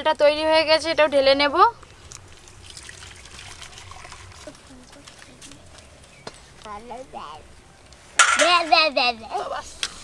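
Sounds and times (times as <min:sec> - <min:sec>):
syrup pouring trickle: 0:01.8 - 0:05.0.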